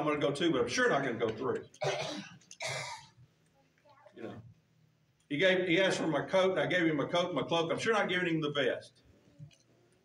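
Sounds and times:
person clearing throat: 1.8s - 3.2s.

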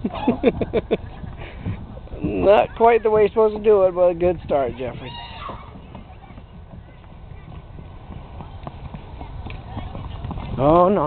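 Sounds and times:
small shoes tapping on rubber matting: 4.2s - 11.0s.

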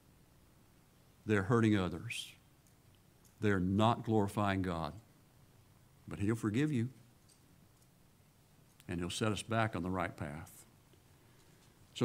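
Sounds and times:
man speaking: 1.2s - 2.4s, 3.4s - 5.1s, 6.1s - 7.0s, 8.9s - 10.7s
faint clicks: 2.6s - 3.4s.

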